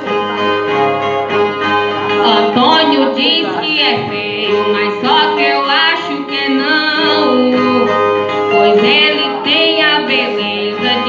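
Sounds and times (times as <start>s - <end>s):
violas strummed: 0.0s - 11.0s
person singing: 2.1s - 11.0s.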